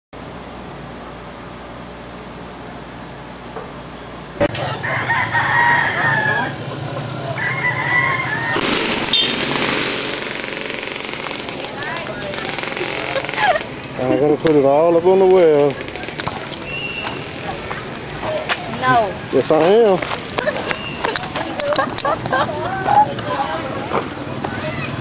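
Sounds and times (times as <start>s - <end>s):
rooster crowing: 4.5s - 8.6s
loud rushing noise: 6.0s - 20.8s.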